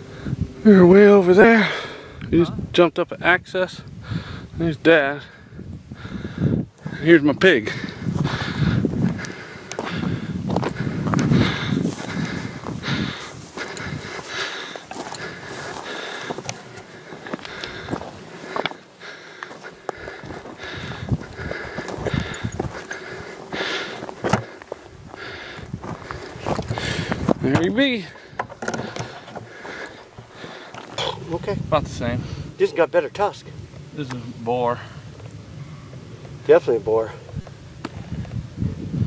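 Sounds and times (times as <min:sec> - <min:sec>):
footsteps on loose rock: 0:08.1 - 0:31.3.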